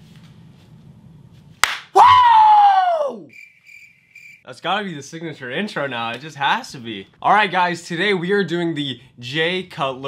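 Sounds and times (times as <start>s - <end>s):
sharp slap: 1.6s - 2.3s.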